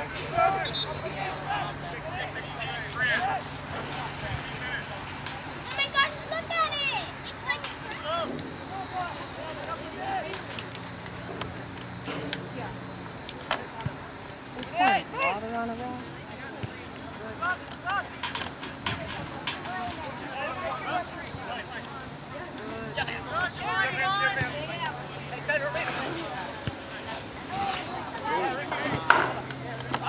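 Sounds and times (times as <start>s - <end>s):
people shouting calls: 0.0s - 4.2s, 19.3s - 26.6s.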